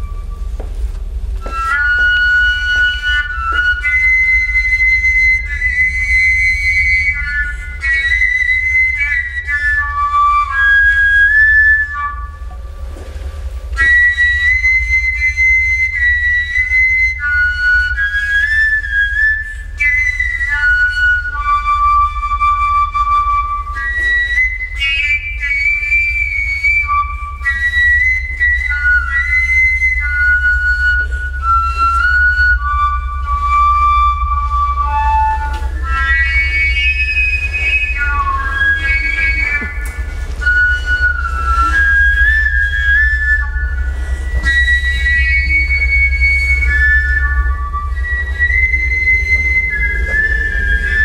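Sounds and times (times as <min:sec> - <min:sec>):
high piping held tones: 0:00.0 - 0:51.0
steady low drone: 0:00.0 - 0:51.0.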